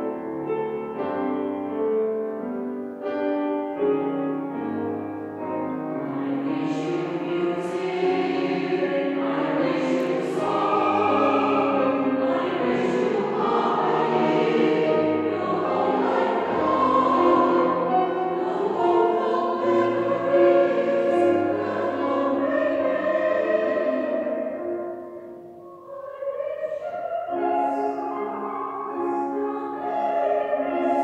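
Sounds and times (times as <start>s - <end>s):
instrumental accompaniment: 0.0s - 25.9s
choir singing: 4.8s - 31.0s.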